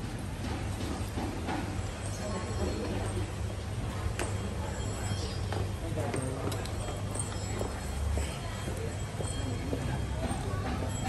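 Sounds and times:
faint voices: 2.0s - 11.0s.

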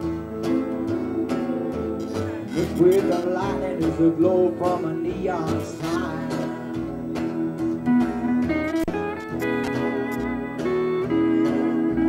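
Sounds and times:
person singing: 0.0s - 7.7s
bass line: 0.0s - 12.0s
country band playing: 0.0s - 12.0s
guitar strumming: 0.0s - 12.0s.

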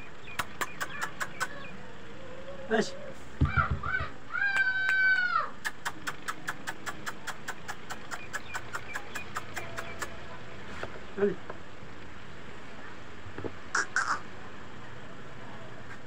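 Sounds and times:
squirrel sharp chirps: 0.0s - 1.8s, 5.7s - 10.2s, 13.8s - 14.2s
squirrel meow-like call: 13.7s - 14.3s.

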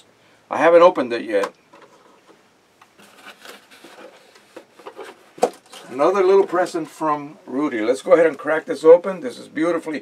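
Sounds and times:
cardboard rustling: 3.0s - 7.0s.

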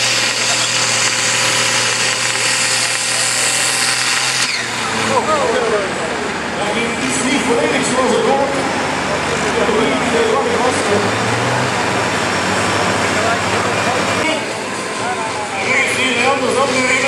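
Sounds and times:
diesel tractor engine under load: 0.0s - 17.0s.

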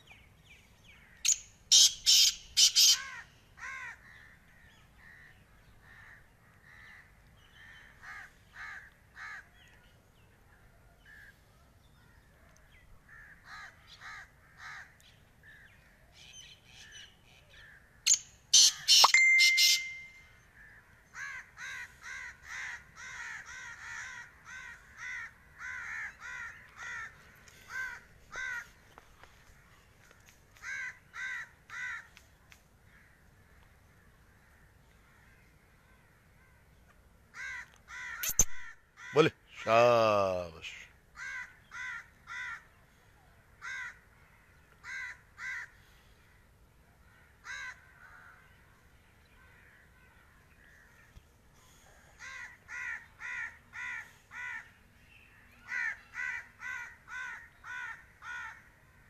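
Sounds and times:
harsh bird calls: 0.0s - 10.0s, 11.0s - 29.8s, 34.2s - 43.0s, 47.0s - 58.7s
soft repeated bird calls: 0.0s - 59.0s.

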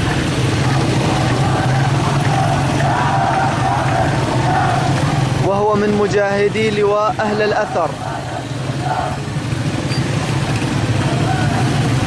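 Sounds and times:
faint crowd voices: 0.0s - 12.0s
vehicle engine running: 0.0s - 12.0s.

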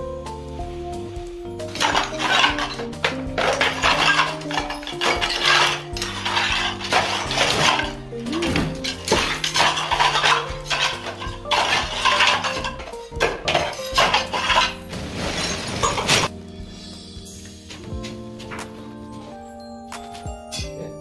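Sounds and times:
background music: 0.0s - 21.0s
ceramic tiles clinking and clattering: 1.7s - 16.3s.

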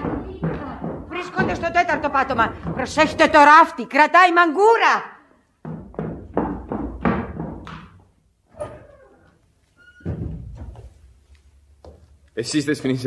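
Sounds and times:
thuds and knocks: 0.0s - 3.5s, 5.6s - 8.1s, 10.0s - 11.0s.

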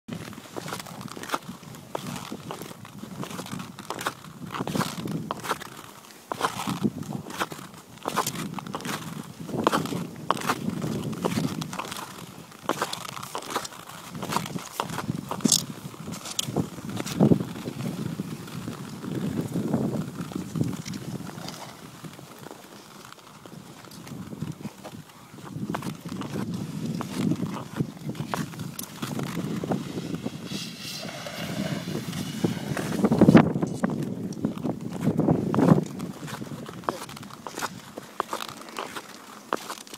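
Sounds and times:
ice skate blades scraping ice: 0.1s - 39.9s.

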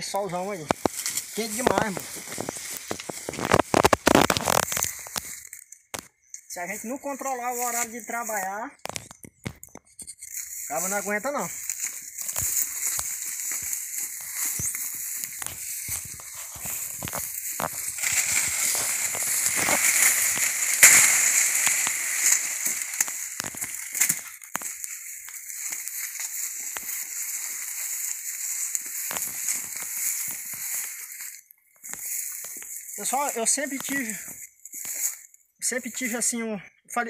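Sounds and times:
dry leaves rustling and crackling: 0.2s - 9.1s, 10.2s - 35.3s
machete cutting into plant: 17.0s - 24.6s.

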